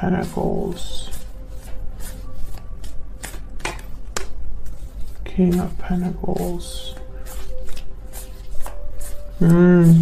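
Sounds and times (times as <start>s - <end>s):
cards being shuffled: 0.1s - 10.0s.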